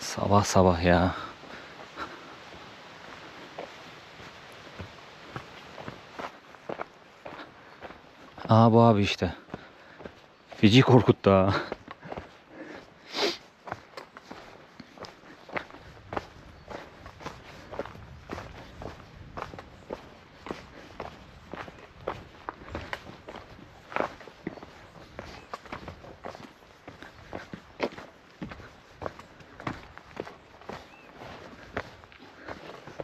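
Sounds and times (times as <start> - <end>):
footsteps crunching on stony trail: 0.0 - 33.0.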